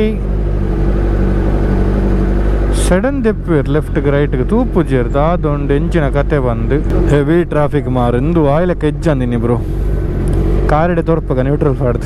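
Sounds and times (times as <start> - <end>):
motorcycle engine running at low revs: 0.0 - 12.0
steady low rumble: 0.0 - 12.0.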